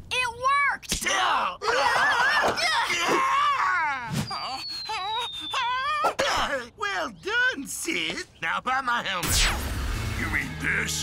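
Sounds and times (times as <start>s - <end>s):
cartoon characters screaming and groaning: 1.0s - 6.2s.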